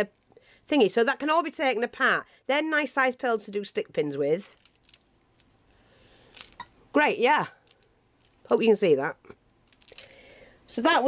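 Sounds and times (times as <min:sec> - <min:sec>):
glass beads clicking: 0:04.4 - 0:06.8, 0:07.6 - 0:08.7, 0:09.6 - 0:10.6.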